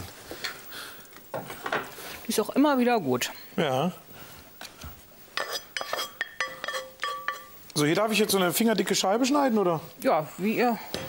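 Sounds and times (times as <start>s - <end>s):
metal pots knocking and clinking: 5.4s - 8.4s.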